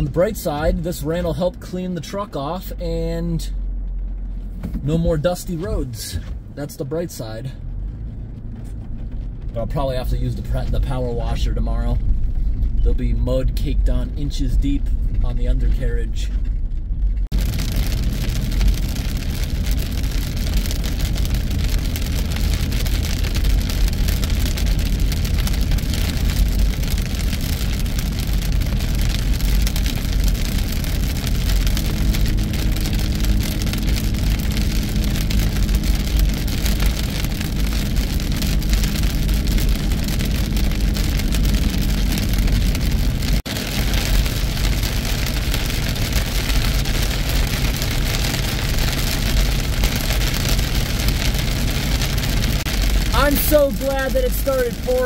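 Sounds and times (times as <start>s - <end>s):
engine hum: 0.0s - 55.0s
heavy rain on windshield and roof: 0.0s - 55.0s
tyres on a wet road: 0.0s - 55.0s.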